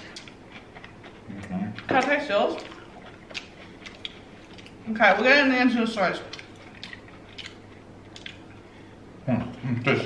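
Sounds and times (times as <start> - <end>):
chewing: 0.0 - 5.3, 5.9 - 8.7.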